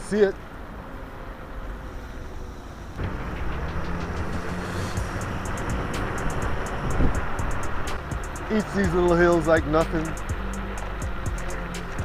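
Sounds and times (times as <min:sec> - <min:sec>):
scooter road rumble: 0:00.0 - 0:12.0
wind rushing over microphone: 0:03.0 - 0:08.6.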